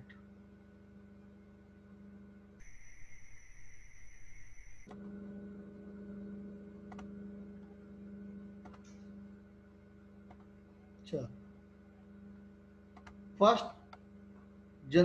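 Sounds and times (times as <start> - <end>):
low electrical hum: 0.0 - 15.0
unsteady hiss: 2.6 - 4.9
high steady whines: 2.6 - 5.5.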